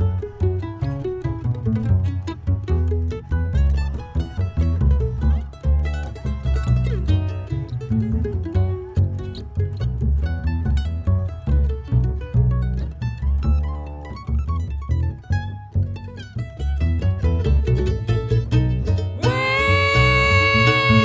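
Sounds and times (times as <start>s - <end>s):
acoustic mandolin picking: 0.0s - 21.0s.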